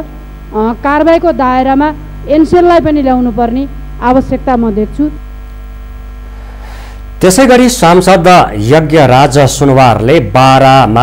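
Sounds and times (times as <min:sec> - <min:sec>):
electrical mains hum: 0:00.0 - 0:11.0
woman speaking: 0:00.5 - 0:05.2.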